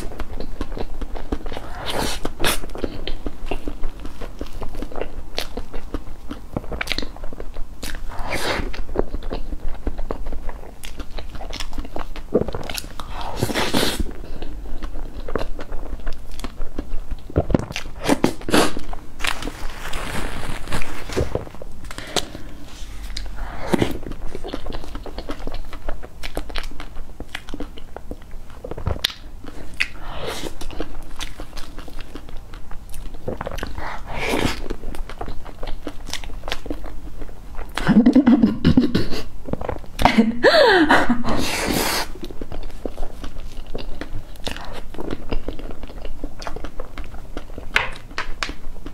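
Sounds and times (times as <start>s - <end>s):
wet chewing: 0.0s - 38.0s, 41.7s - 48.9s.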